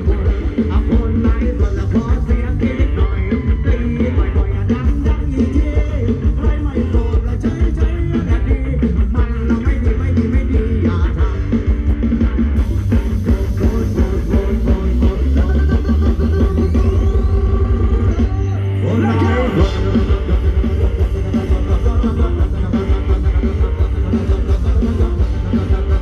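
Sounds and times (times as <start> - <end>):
dance band music with guitar and bass: 0.0 - 26.0.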